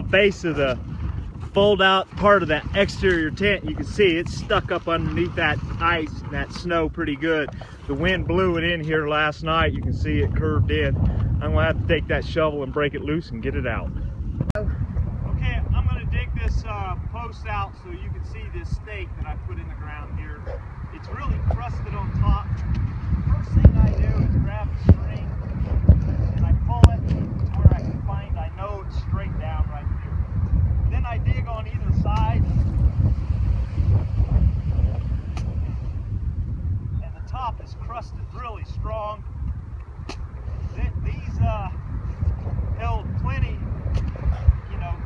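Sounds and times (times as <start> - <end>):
wind rumbling on microphone: 0.0 - 45.0.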